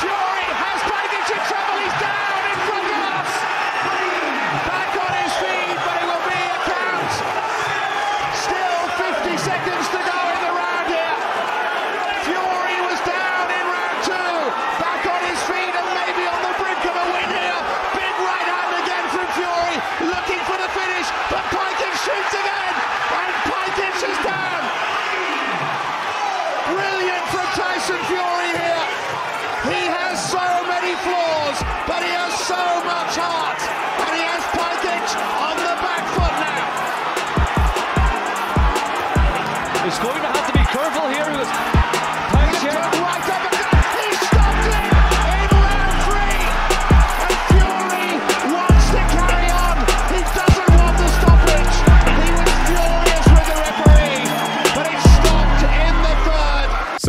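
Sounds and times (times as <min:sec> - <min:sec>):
crowd shouting and cheering: 0:00.0 - 0:57.0
deep thumping music beat: 0:35.7 - 0:56.3.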